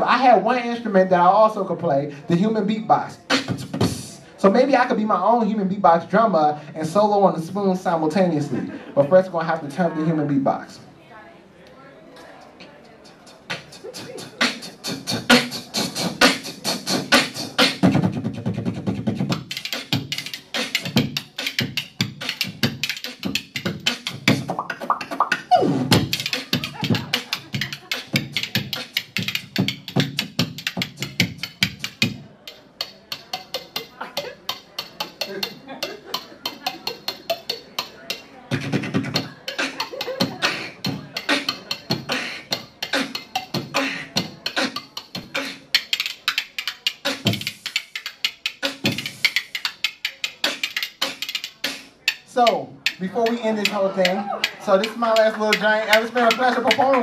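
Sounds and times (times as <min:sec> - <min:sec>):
beatboxing into a microphone: 0:00.0 - 0:10.8, 0:12.9 - 0:57.0
spoons played as percussion: 0:13.5 - 0:57.0.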